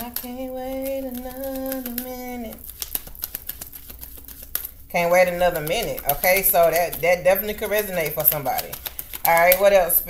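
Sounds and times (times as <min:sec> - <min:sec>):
cards being shuffled: 0:00.0 - 0:10.0.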